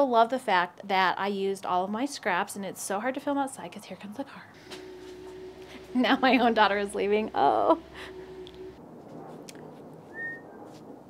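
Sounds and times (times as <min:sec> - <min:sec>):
passing vehicle rumble: 0:04.5 - 0:08.8
whistled bird chirp: 0:10.1 - 0:10.6.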